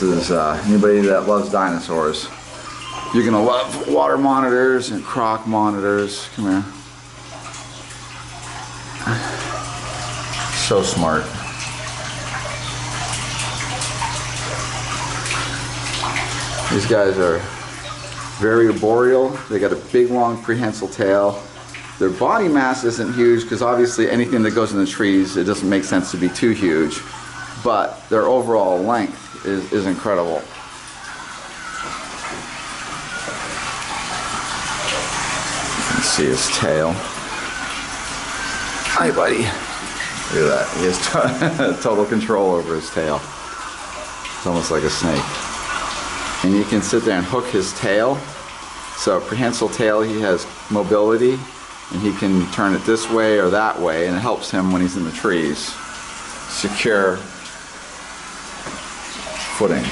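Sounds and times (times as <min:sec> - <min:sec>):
running water rushing: 0:00.0 - 0:59.9.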